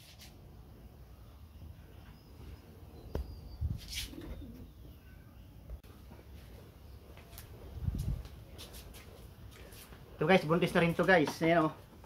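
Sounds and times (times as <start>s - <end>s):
bird cooing: 4.0s - 5.2s.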